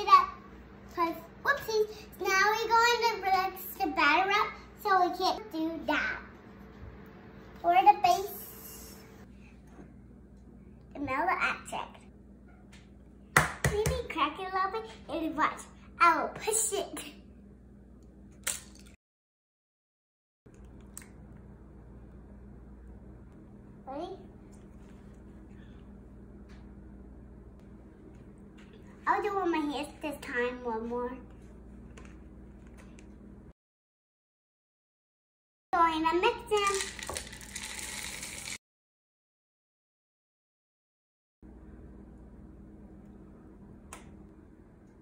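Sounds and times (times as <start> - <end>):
chocolate chips pouring into bowl: 36.6 - 38.6.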